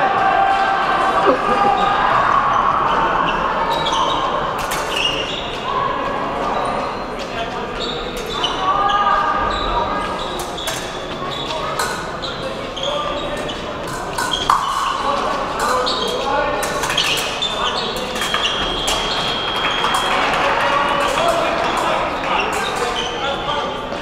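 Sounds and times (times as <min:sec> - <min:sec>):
voices in a large hall: 0:00.0 - 0:24.0.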